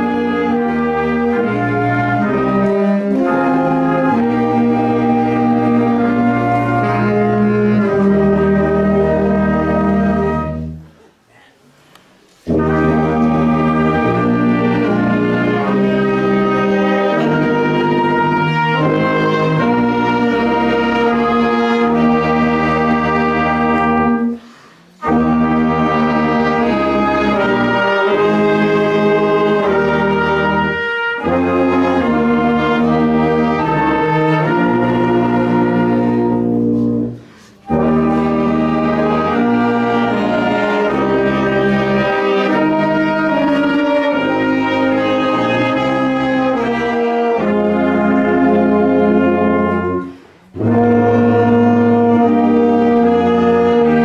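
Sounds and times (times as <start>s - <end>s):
brass marching band playing: 0.0s - 10.9s, 12.4s - 54.0s.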